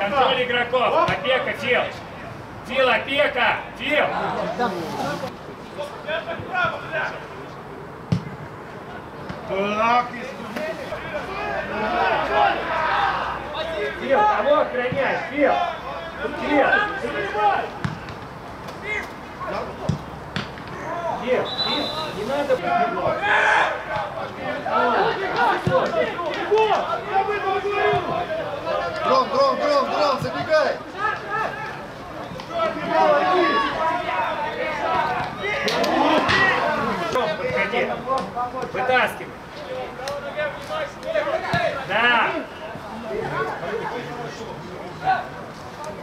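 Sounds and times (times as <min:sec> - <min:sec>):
shouts: 0:11.3 - 0:17.8, 0:20.7 - 0:31.8, 0:32.5 - 0:37.2.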